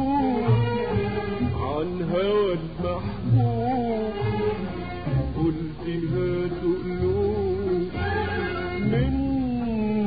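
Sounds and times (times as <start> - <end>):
bowed string section melody: 0.0 - 9.7.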